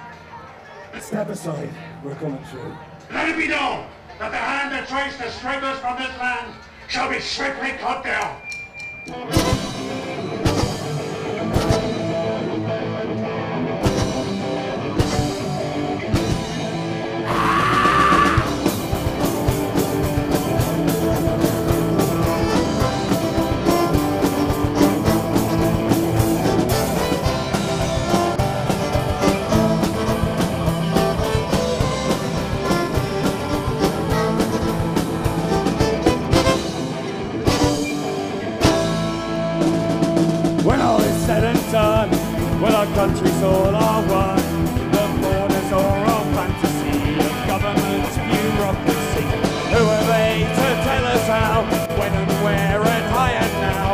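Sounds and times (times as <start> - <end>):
live folk-rock band playing: 9.1 - 53.9.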